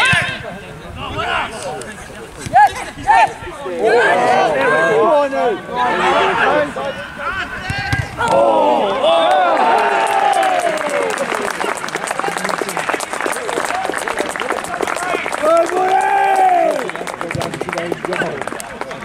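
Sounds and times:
crowd shouting and cheering: 0.0s - 1.8s, 2.5s - 19.0s
people clapping: 9.2s - 19.0s.

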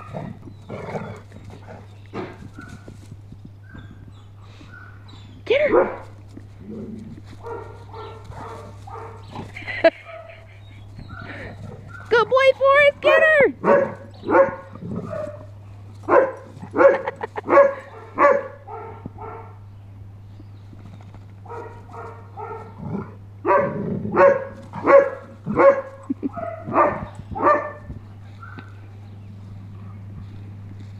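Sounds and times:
dogs barking: 0.0s - 19.7s, 21.4s - 30.7s.

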